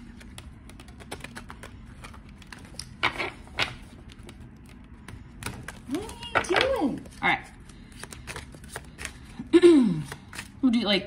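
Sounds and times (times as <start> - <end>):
cards being shuffled: 0.0 - 10.6.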